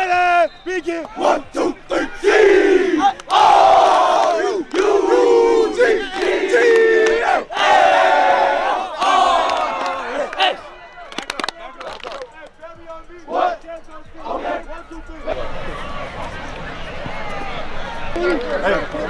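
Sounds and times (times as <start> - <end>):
players shouting a chant: 0.0 - 19.0
scattered voices: 0.7 - 19.0.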